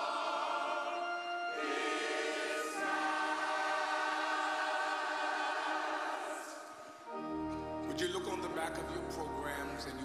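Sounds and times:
choir singing: 0.0s - 7.2s.

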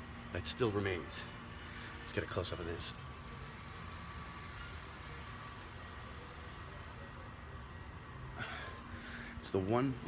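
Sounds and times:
faint steady tone: 0.0s - 10.0s
low room hum with hiss: 0.0s - 10.0s.

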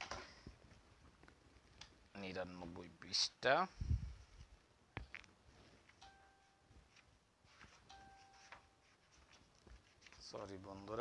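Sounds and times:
faint steady tone: 5.6s - 9.6s
scratching strokes of writing: 6.8s - 10.4s.

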